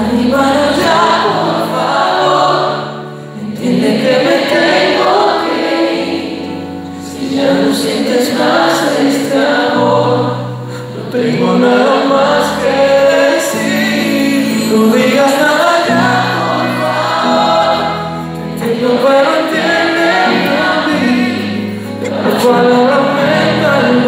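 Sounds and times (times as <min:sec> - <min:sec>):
guitar: 0:00.0 - 0:24.0
keyboard: 0:00.0 - 0:24.0
men singing: 0:00.0 - 0:24.0.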